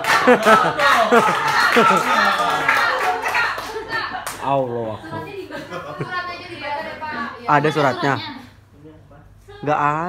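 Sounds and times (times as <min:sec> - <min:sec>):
small group clapping: 0:00.0 - 0:04.6.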